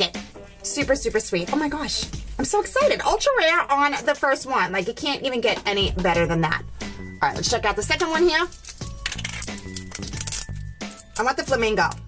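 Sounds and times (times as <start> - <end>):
background music: 0.0 - 12.0
plastic package clicks and clinks: 8.5 - 11.3.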